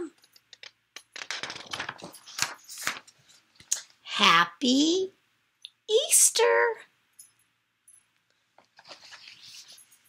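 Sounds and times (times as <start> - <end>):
book pages rustling: 0.6 - 3.7, 8.6 - 10.0.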